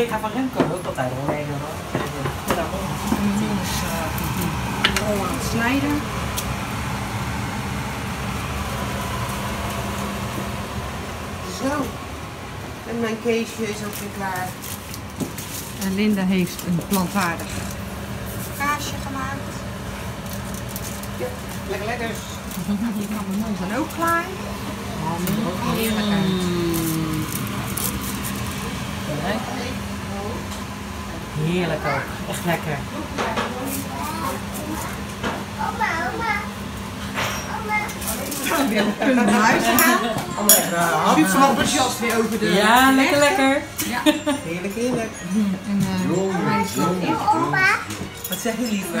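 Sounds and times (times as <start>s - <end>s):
fan humming: 0.0s - 49.0s.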